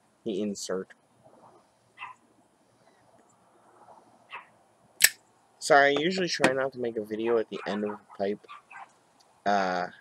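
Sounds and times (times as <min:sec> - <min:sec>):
sharp click: 0:05.0 - 0:05.2.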